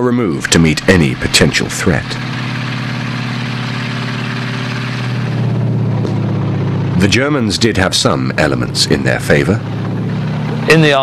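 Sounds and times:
heavy vehicle engines running: 0:00.0 - 0:11.0.

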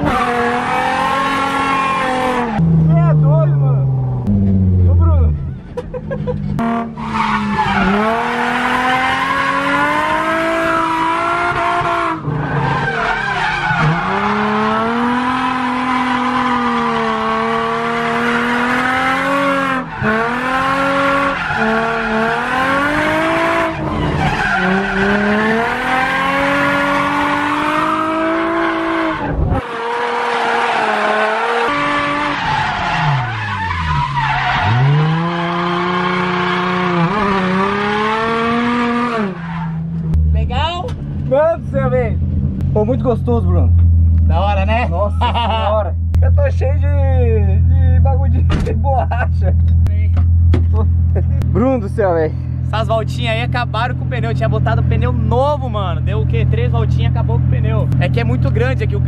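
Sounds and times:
car engine revving high: 0:00.0 - 0:05.4, 0:06.6 - 0:41.4.

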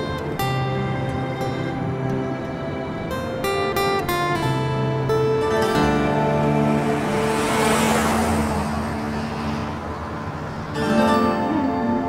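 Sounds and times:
background music with held notes: 0:00.0 - 0:12.0
car driving past on dirt: 0:05.7 - 0:10.9.

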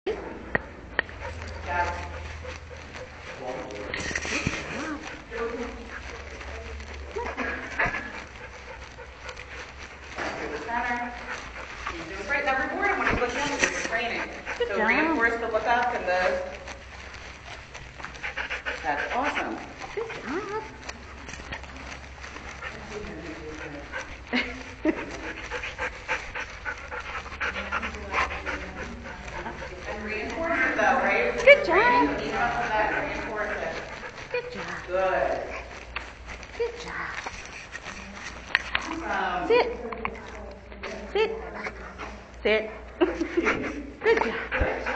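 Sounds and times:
dog panting: 0:00.1 - 0:44.9.

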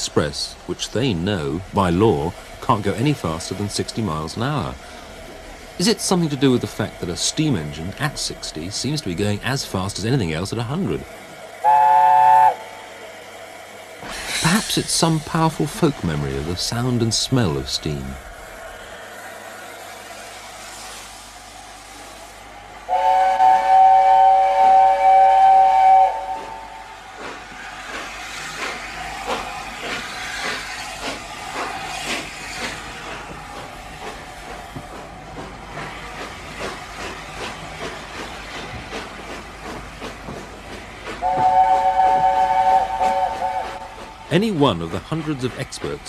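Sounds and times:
steady hiss of steam: 0:00.0 - 0:46.0
steam exhaust beats: 0:00.0 - 0:46.0
wheel and rail noise: 0:00.0 - 0:46.0
steam locomotive chime whistle: 0:11.6 - 0:12.6, 0:22.9 - 0:26.9, 0:41.2 - 0:44.0.

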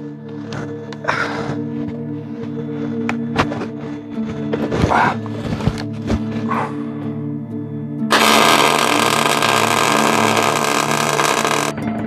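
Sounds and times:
welder arc hissing: 0:08.1 - 0:11.7.

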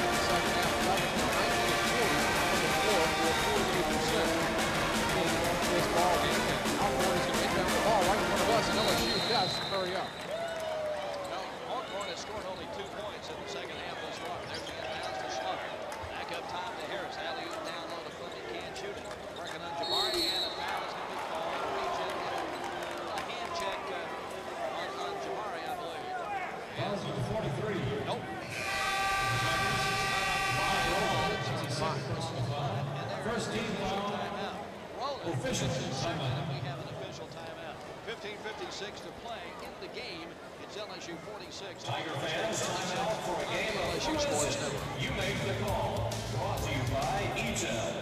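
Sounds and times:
arena horn: 0:00.0 - 0:03.8, 0:28.4 - 0:31.7
crowd noise: 0:00.0 - 0:48.0
whistle blast: 0:08.6 - 0:10.4, 0:19.8 - 0:20.7, 0:28.5 - 0:31.3.

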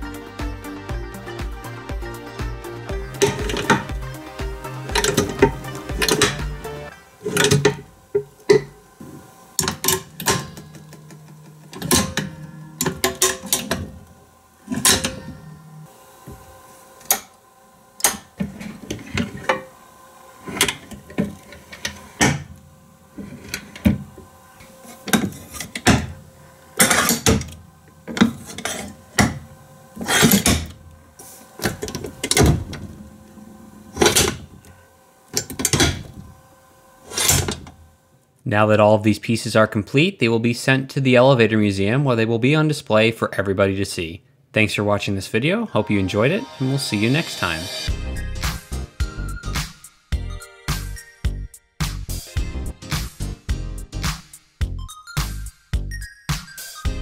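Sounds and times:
soft background music: 0:00.0 - 0:08.9, 0:11.2 - 0:15.9, 0:45.6 - 0:57.0.

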